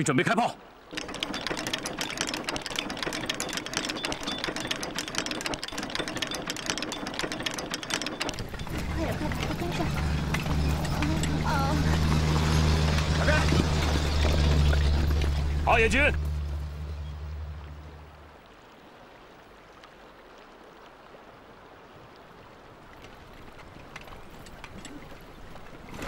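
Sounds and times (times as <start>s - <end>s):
dense rapid clatter: 0.9s - 16.6s
low engine drone: 1.0s - 18.5s.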